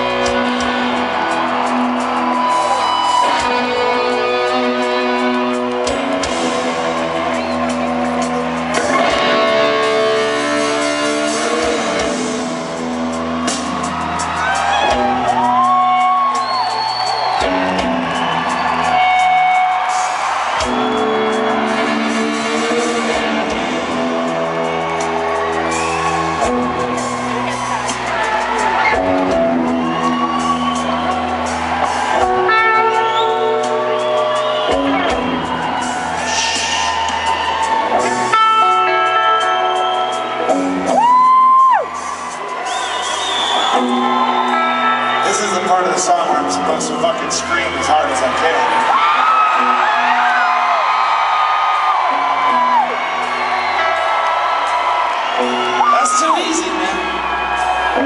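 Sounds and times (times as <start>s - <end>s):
crowd whooping: 0.0s - 58.0s
rock band playing live: 0.0s - 58.0s.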